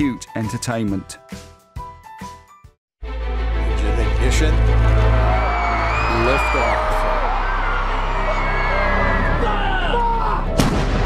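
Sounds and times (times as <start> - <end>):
background music: 0.0 - 11.0
field gun shot: 10.6 - 11.0.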